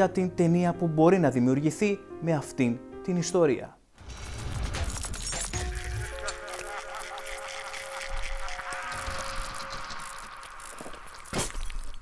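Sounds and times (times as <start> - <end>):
hissing buzzing texture: 4.2 - 12.0.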